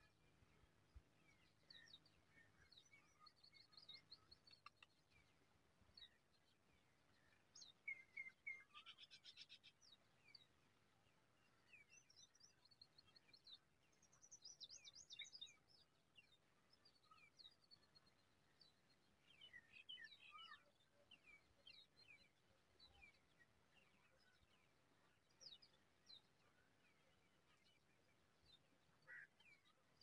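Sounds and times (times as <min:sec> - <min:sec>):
faint bird chirps and calls: 0:00.0 - 0:30.0.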